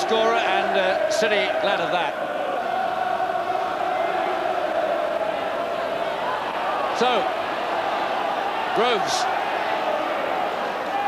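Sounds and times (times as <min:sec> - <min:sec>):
football crowd singing and chanting: 0:00.0 - 0:11.0.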